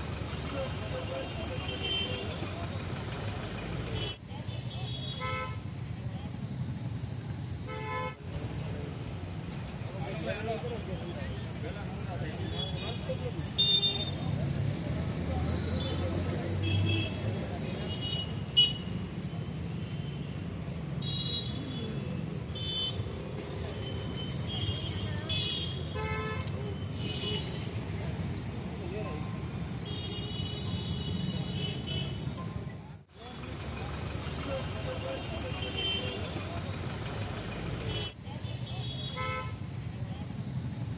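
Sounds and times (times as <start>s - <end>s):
rumble of passing vehicles: 0.0s - 40.9s.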